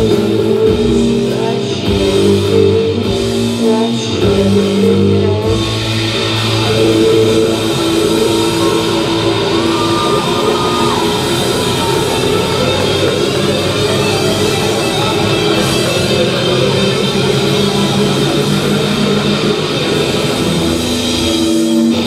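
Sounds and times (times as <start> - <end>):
distorted electric guitar: 0.0 - 22.0
rock band playing loud: 0.0 - 22.0.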